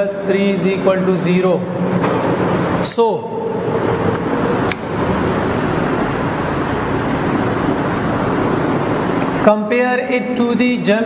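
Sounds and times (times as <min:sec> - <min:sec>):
faint hum: 0:00.0 - 0:10.4
steady rushing noise: 0:01.5 - 0:09.5.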